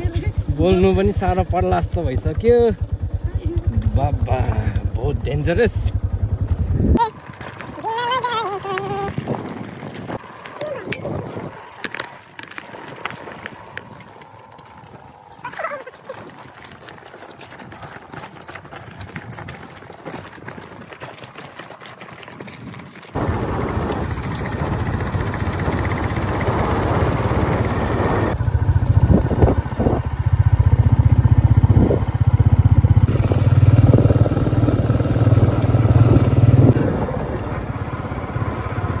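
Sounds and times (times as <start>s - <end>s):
motorcycle engine drone: 0.0s - 15.7s, 23.2s - 39.0s.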